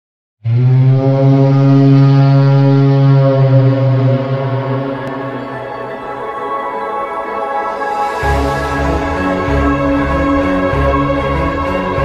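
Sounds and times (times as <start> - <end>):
deep held drone: 0.4 - 12.0.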